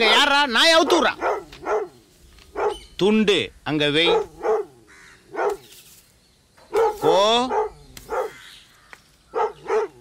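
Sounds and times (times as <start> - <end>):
dog barking: 0.9 - 2.8, 4.0 - 4.7, 5.3 - 5.6, 6.7 - 8.4, 9.3 - 10.0.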